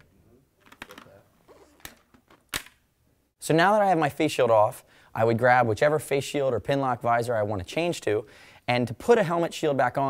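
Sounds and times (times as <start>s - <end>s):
faint handling noise: 0.0s - 2.8s.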